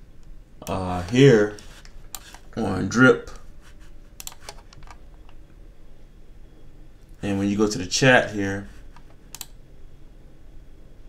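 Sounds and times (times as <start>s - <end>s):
faint room hiss: 0.0s - 11.0s
mouse and keyboard clicks: 1.0s - 2.4s, 4.2s - 5.0s, 8.9s - 9.6s.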